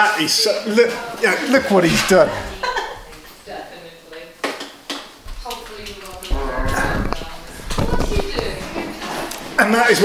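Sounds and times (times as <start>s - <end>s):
voices: 0.4s - 10.0s.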